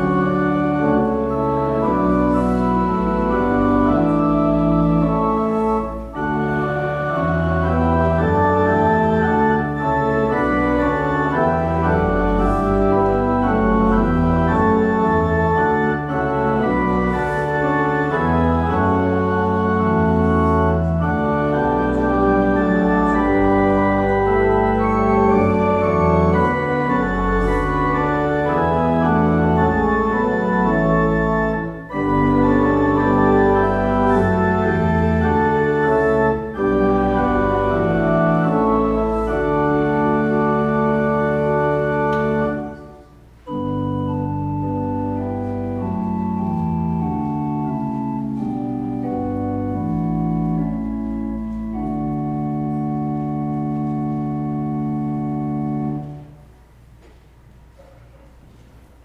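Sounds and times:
church organ chords: 0:00.0 - 0:57.7.

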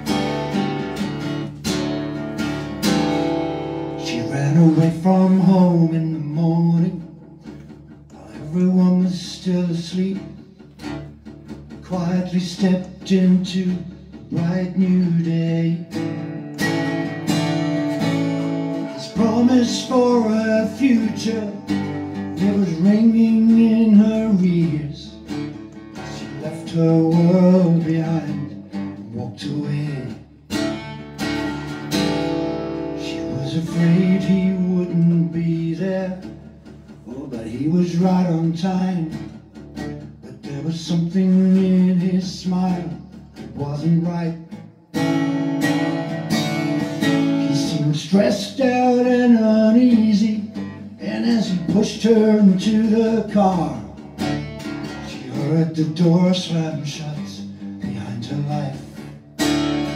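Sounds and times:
acoustic guitar: 0:00.0 - 0:59.9
man singing: 0:03.8 - 0:10.7, 0:11.7 - 0:16.4, 0:17.9 - 0:30.5, 0:32.7 - 0:39.4, 0:40.0 - 0:44.7, 0:46.0 - 0:54.2, 0:54.9 - 0:59.2.

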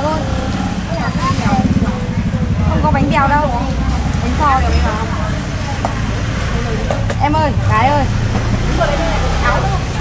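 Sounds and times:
motorbike engine running: 0:00.0 - 0:10.0
people talking: 0:00.0 - 0:10.0.

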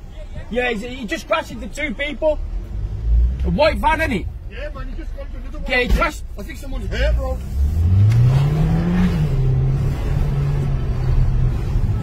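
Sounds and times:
road noise: 0:00.0 - 0:12.0
car engine accelerating: 0:02.3 - 0:12.0.

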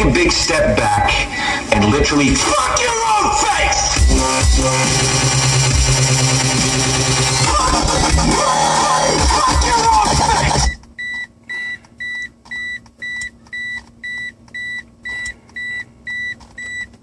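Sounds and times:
dubstep music from car stereo: 0:00.0 - 0:10.8
car warning chime beeping: 0:10.6 - 0:17.0.

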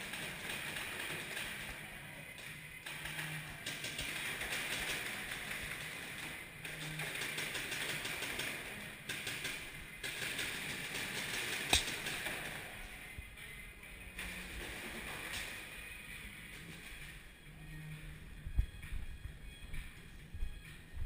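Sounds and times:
paintball markers firing: 0:03.0 - 0:12.8.

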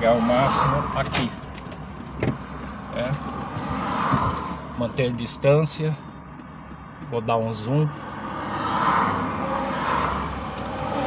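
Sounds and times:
vehicle tyre and road noise: 0:00.0 - 0:11.0.

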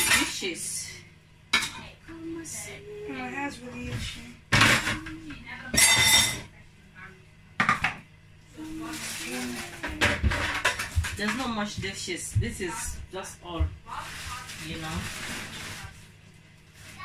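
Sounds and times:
dishes clattering in metal sink: 0:00.0 - 0:00.4, 0:01.5 - 0:01.8, 0:04.5 - 0:06.5, 0:07.6 - 0:08.0, 0:09.4 - 0:11.8.

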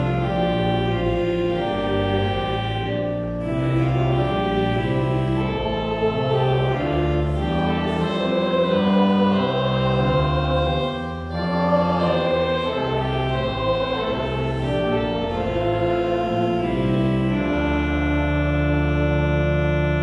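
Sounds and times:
organ holding low notes: 0:00.0 - 0:20.0
group singing a hymn: 0:05.0 - 0:17.5.

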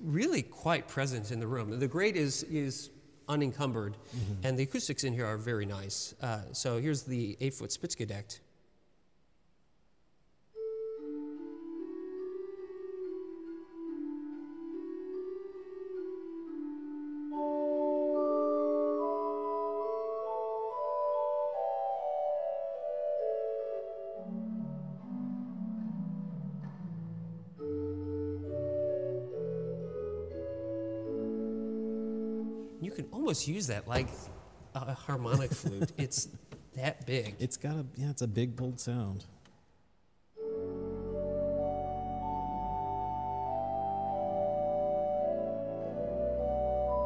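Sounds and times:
pipe organ flute stop melody: 0:10.6 - 0:33.0, 0:40.4 - 0:47.0.

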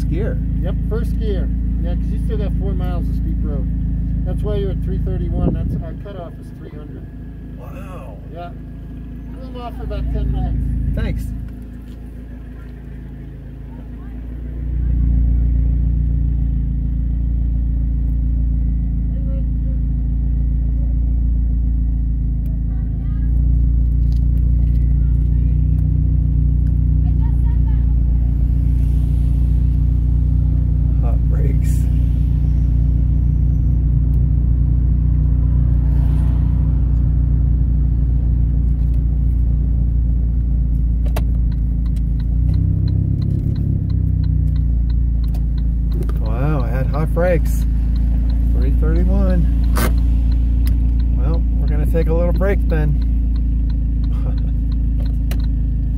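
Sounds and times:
car engine and tyre drone: 0:00.0 - 0:55.9.

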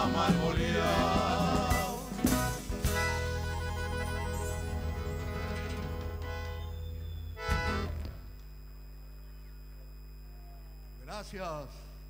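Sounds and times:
band with accordion and percussion: 0:00.0 - 0:08.4
sound system hum: 0:00.0 - 0:12.0.

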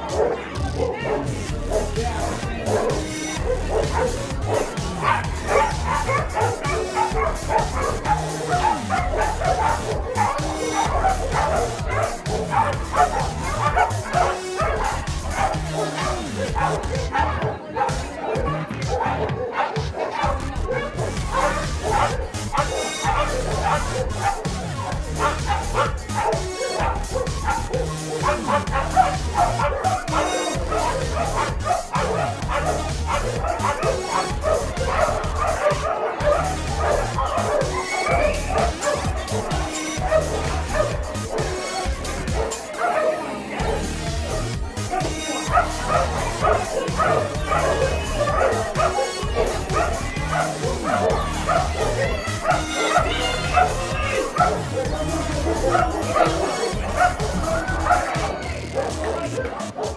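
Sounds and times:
background music: 0:00.0 - 0:59.9
dogs barking and yipping: 0:00.0 - 0:59.9.

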